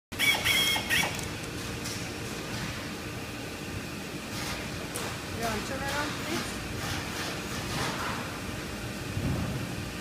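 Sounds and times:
low machinery hum: 0:00.1 - 0:10.0.

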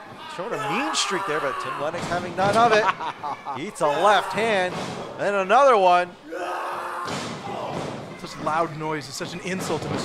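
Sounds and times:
crowd noise: 0:00.0 - 0:10.0
punches thudding: 0:07.0 - 0:08.2.

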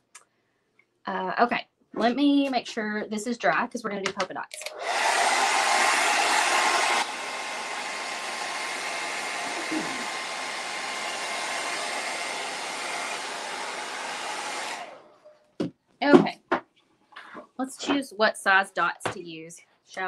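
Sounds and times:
hair dryer blowing: 0:04.6 - 0:15.2.

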